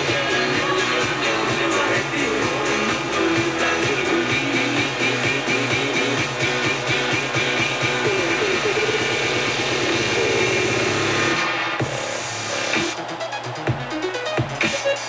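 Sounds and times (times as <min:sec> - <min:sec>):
rhythmic music on radio: 0:00.0 - 0:15.0.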